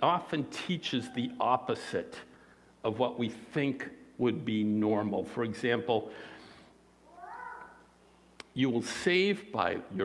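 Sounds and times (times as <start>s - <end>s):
man's voice echoing: 0.0s - 6.3s, 8.5s - 10.0s.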